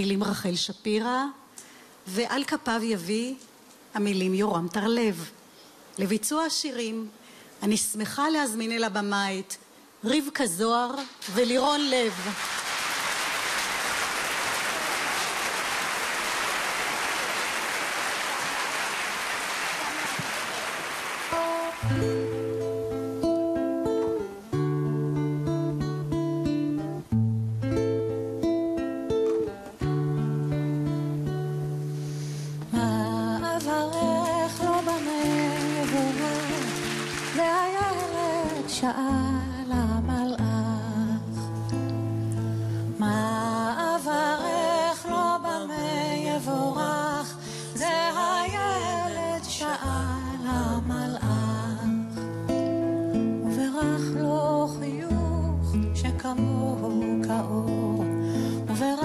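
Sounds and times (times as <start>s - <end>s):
audience applauding: 12.0s - 22.7s, 33.6s - 38.8s
classical guitar playing: 21.3s - 59.0s
woman singing: 32.7s - 41.8s, 43.0s - 52.2s, 53.3s - 59.0s.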